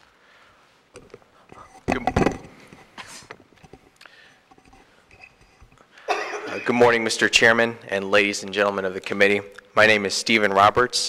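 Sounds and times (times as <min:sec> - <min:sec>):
microphone knocks and clicks: 0:01.8 - 0:02.8.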